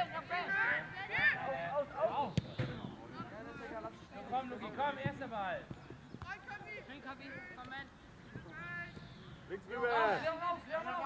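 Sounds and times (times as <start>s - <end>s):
football being kicked: 2.3s - 3.0s.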